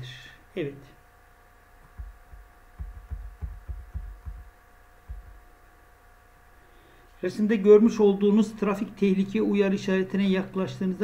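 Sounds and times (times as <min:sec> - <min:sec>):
faint electrical hum: 0:00.0 - 0:11.0
soft low thumps: 0:01.8 - 0:05.6.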